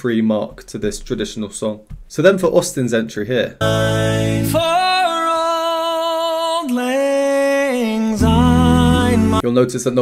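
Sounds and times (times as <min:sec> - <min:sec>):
deeper voices singing: 0:03.6 - 0:09.4
man singing a cappella: 0:03.6 - 0:09.4.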